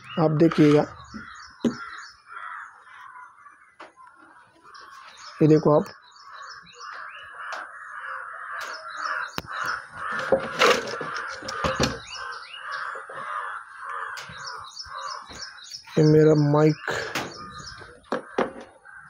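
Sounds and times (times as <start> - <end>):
small birds chirping: 0.0 - 19.0
crows cawing: 0.8 - 15.9, 16.8 - 19.0.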